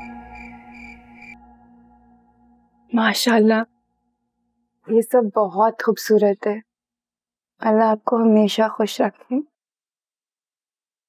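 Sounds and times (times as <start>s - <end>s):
high pulsing chime: 0.0s - 3.9s
soft ambient music: 0.0s - 4.0s
woman's voice: 2.9s - 3.7s, 4.9s - 6.6s, 7.6s - 9.5s.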